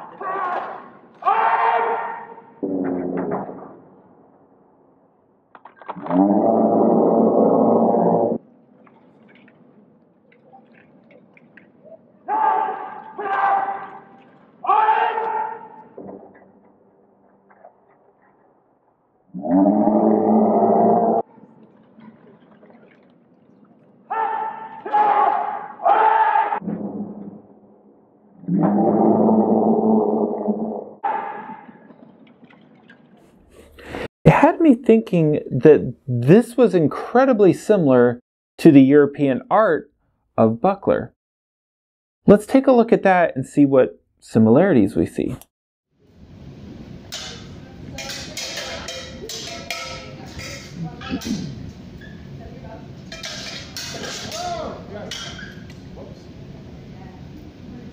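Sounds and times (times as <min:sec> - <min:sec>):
men shouting kiai: 0:00.0 - 0:02.4, 0:12.3 - 0:15.8, 0:24.1 - 0:26.6.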